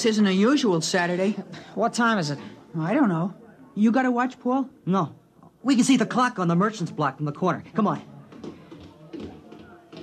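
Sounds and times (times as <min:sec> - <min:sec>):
faint voices: 0:00.0 - 0:10.0
footsteps tapping: 0:07.7 - 0:10.0.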